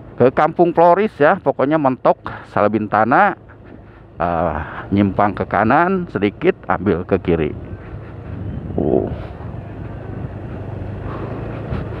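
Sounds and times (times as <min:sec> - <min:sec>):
motorcycle engine running: 0:03.4 - 0:12.0
wind noise on microphone: 0:07.4 - 0:12.0.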